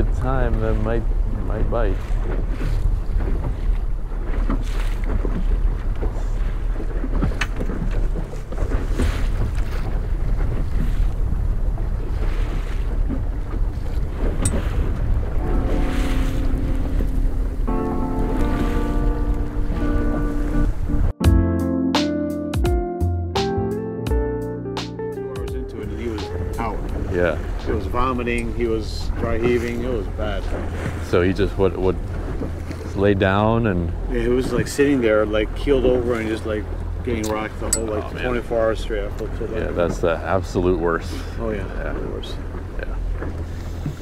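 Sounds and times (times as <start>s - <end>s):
outboard motor running: 0.0s - 21.1s, 25.6s - 44.0s
water rushing past hull: 0.0s - 21.2s, 25.5s - 44.0s
wind buffeting microphone: 0.0s - 21.2s, 25.4s - 44.0s
background music: 15.4s - 28.3s.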